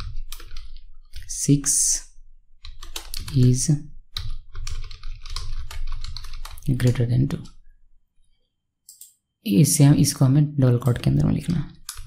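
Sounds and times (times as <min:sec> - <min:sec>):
fast typing on keyboard: 0:00.0 - 0:02.0, 0:02.6 - 0:07.6, 0:10.7 - 0:12.0.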